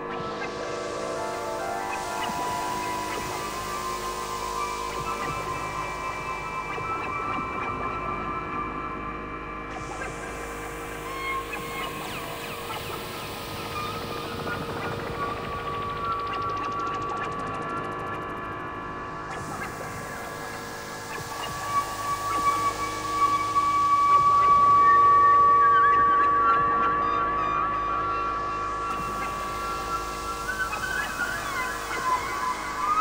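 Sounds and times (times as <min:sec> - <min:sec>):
synthesizer drone tones: 0:00.0 - 0:33.0.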